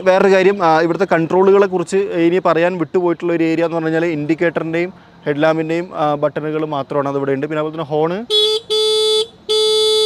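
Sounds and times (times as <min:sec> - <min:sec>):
scooter horn: 0:08.3 - 0:10.0.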